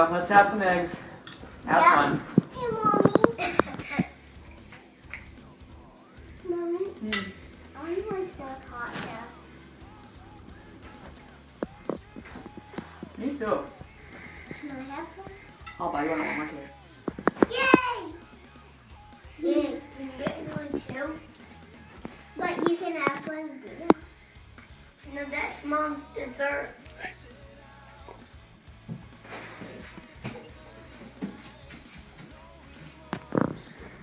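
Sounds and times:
background music: 0.0 - 34.0
small child chattering: 1.8 - 4.2, 17.3 - 18.2.

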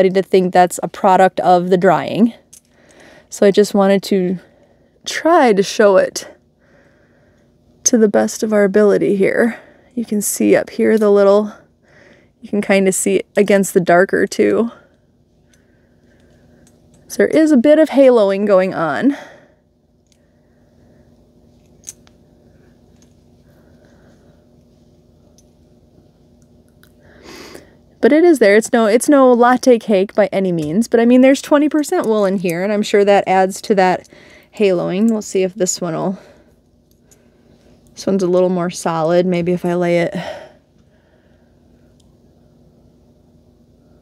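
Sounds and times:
low steady hum: 0.0 - 44.0.

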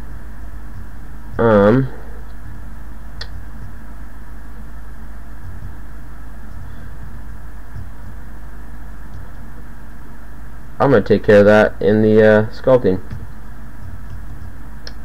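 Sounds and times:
low background hum and hiss: 0.0 - 15.0.

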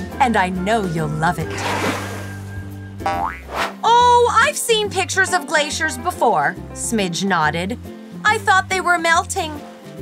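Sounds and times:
background music: 0.0 - 10.0
cartoon water splash: 1.4 - 3.7
springy boing: 3.0 - 3.5.

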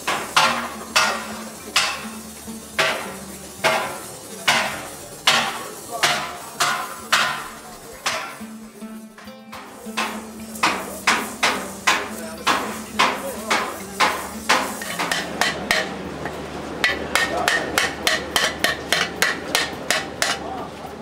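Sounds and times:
hammer striking copper: 0.0 - 20.6.

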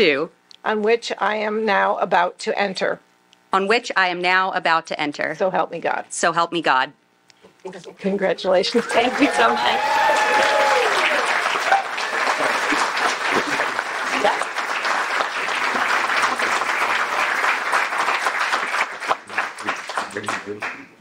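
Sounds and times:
audience applauding: 8.7 - 20.9.

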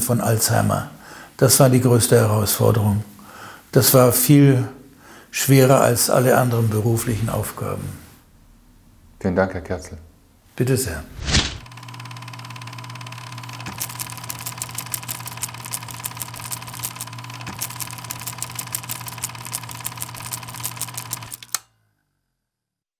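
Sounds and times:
mechanical clatter of rapid clicks: 11.6 - 21.7.

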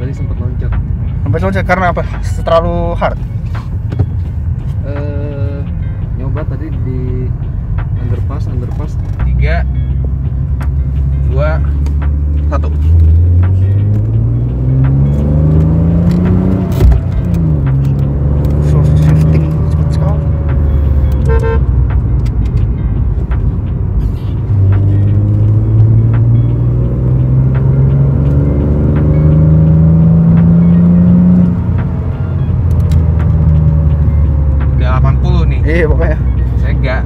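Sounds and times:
car engine accelerating: 8.8 - 37.0.

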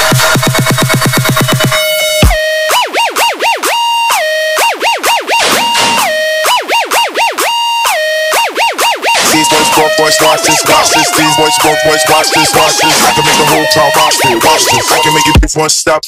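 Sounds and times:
dubstep bass beat: 0.0 - 16.0
siren-like synth swooping: 0.8 - 15.4.

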